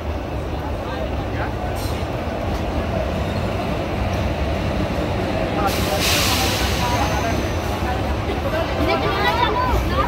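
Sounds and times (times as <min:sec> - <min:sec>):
train wheels rumbling on rails: 0:00.0 - 0:10.0
loud hiss: 0:05.5 - 0:07.8.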